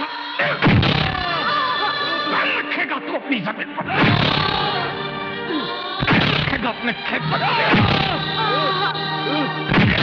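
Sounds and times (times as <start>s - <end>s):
dramatic film music: 0.6s - 10.0s.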